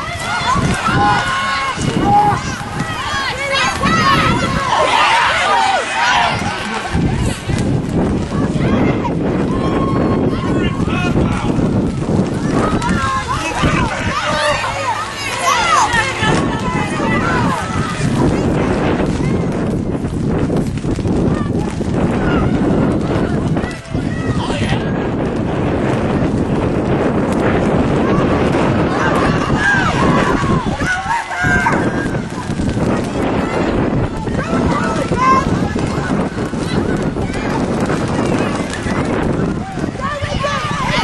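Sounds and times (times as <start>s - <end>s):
distant shouting voices: 0.0s - 7.2s, 8.3s - 19.6s, 27.7s - 41.0s
steady low rumble: 0.0s - 41.0s
wind buffeting microphone: 0.0s - 41.0s.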